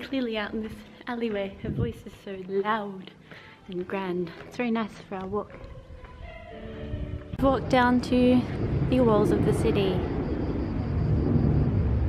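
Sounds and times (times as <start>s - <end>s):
low outdoor rumble: 7.4s - 12.0s.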